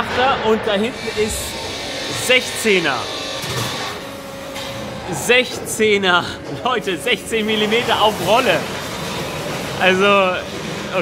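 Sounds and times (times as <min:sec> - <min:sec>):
factory machinery noise: 0:00.0 - 0:11.0.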